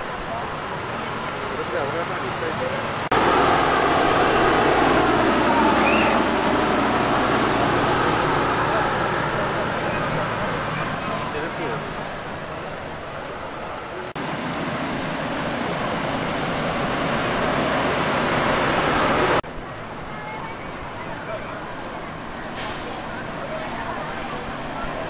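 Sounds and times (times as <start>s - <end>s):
people's voices: 0.0s - 14.2s, 16.5s - 25.0s
vehicles driving through water: 0.0s - 25.0s.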